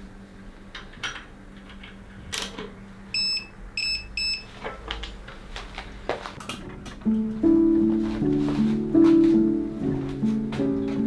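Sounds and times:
short electronic beeps: 0:03.1 - 0:04.5.

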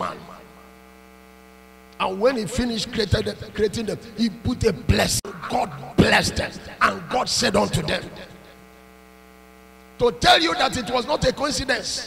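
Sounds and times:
voice: 0:00.0 - 0:00.3, 0:02.0 - 0:08.4, 0:10.0 - 0:12.0
electrical mains hum: 0:00.0 - 0:12.0.

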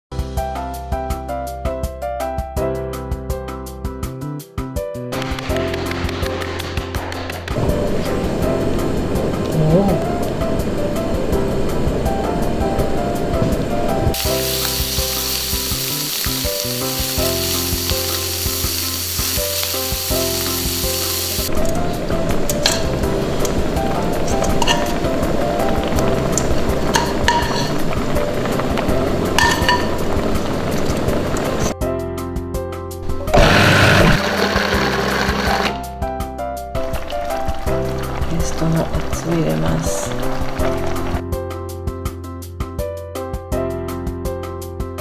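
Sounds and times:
background music: 0:00.1 - 0:45.0
meat sizzling in a frying pan: 0:14.1 - 0:21.5, 0:22.6 - 0:31.8, 0:36.8 - 0:41.2
food processor motor whirring: 0:33.2 - 0:35.8.

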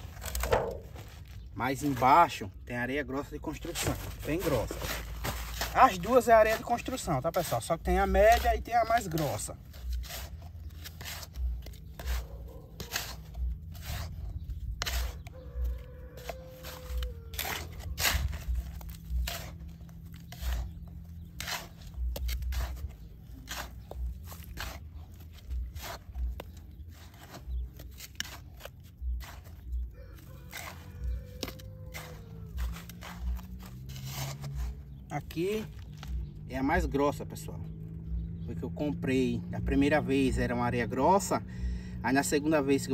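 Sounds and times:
plastic scoop scraping gravel: 0:00.0 - 0:37.3.

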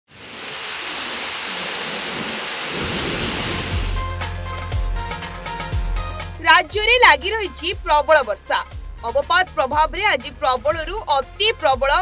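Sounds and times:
heavy rain hiss: 0:00.1 - 0:06.0.

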